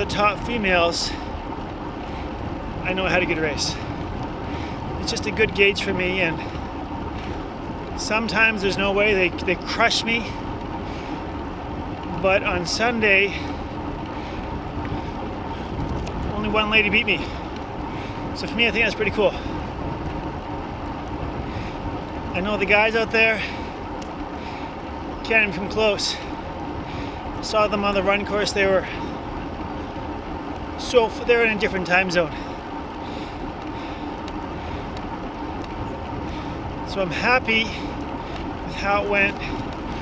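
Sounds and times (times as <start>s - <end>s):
road noise: 0.0s - 40.0s
wind rush over microphone: 0.0s - 40.0s.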